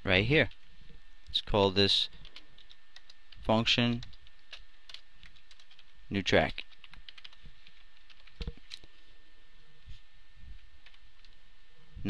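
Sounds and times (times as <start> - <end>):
computer keyboard typing: 2.1 - 8.9, 10.8 - 11.4.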